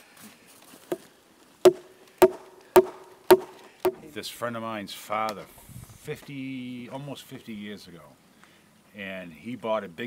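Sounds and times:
heavy blows pounding a log: 1.6s - 4.1s.

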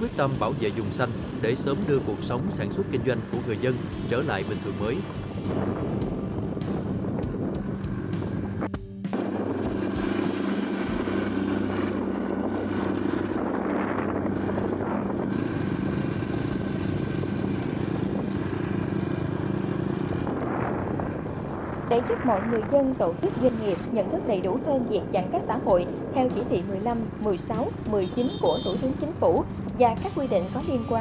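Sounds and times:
motorbike engine running: 0.0s - 31.0s
road and wind noise: 0.0s - 31.0s
music: 0.1s - 12.6s, 23.2s - 31.0s.

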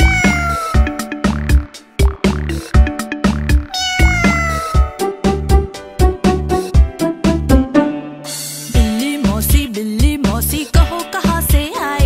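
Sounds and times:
cat meowing: 0.0s - 0.9s, 3.7s - 5.0s
children's song with drum beat: 0.0s - 12.0s.

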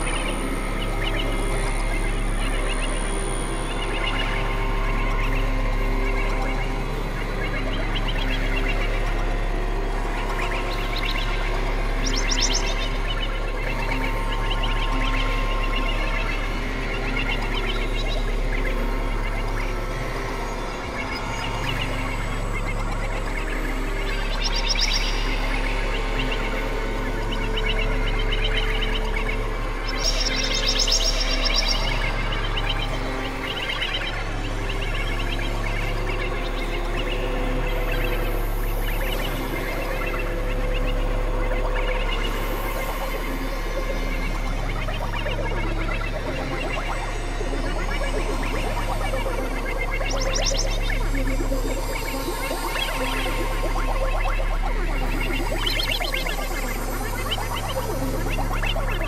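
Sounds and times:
synthesizer drone music: 0.0s - 59.0s.

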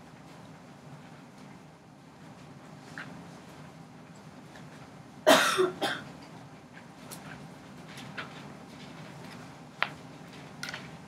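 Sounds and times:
person coughing: 5.3s - 6.1s.

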